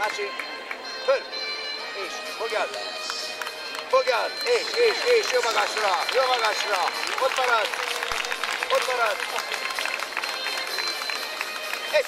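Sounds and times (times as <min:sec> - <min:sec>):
background music: 0:00.0 - 0:12.0
crowd chatter: 0:00.0 - 0:12.0.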